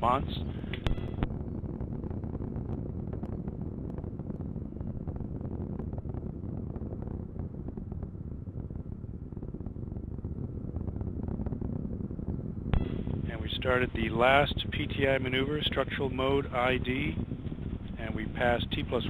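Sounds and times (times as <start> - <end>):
distant rocket roar with crackling: 0.0 - 19.0.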